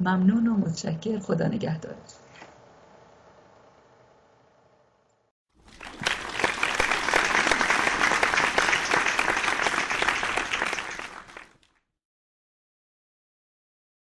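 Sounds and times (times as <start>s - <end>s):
audience applause: 5.6s - 11.8s.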